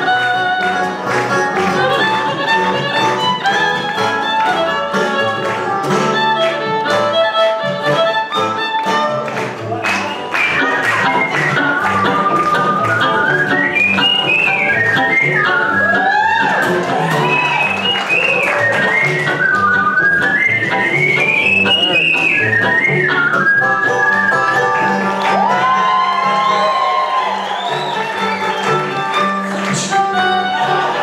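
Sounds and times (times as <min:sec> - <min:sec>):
bluegrass band playing: 0:00.0 - 0:31.0
whistled melody: 0:09.9 - 0:25.8, 0:26.4 - 0:29.3.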